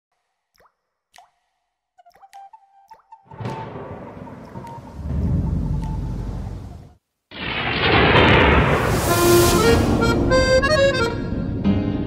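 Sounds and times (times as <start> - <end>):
deep thunder-like rumble: 3.3 - 11.0.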